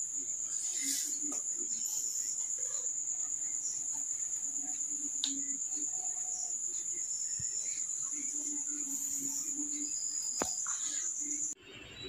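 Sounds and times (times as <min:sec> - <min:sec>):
crickets trilling: 0:00.0 - 0:11.6.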